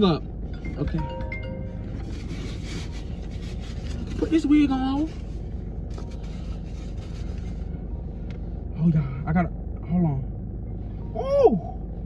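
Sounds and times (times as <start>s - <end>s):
low rumble inside car: 0.0s - 12.0s.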